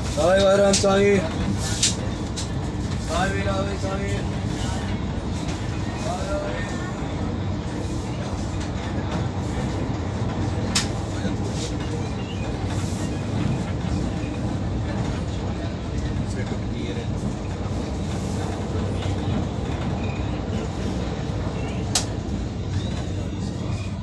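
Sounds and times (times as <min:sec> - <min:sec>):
train wheels rumbling on track: 0:00.0 - 0:24.0
sharp click: 0:21.9 - 0:22.1.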